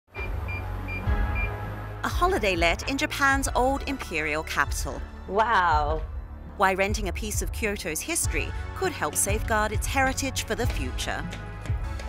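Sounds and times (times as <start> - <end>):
background music with bass line: 0.1 - 12.0
keypad lock beeping: 0.2 - 1.6.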